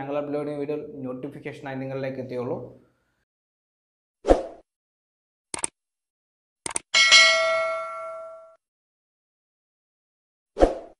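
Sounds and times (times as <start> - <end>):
notification bell ding: 7.0 - 8.6.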